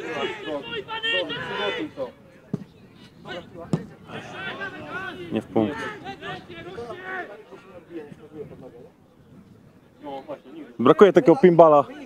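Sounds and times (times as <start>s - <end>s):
players calling out: 0.0s - 8.2s
football being kicked: 3.7s - 3.9s.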